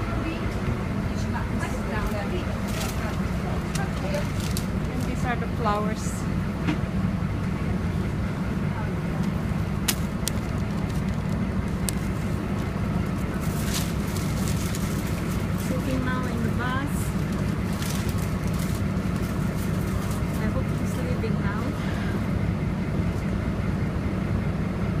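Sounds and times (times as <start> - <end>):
faint voices: 0.0 - 6.4, 7.5 - 22.3
bus engine rumble: 0.0 - 25.0.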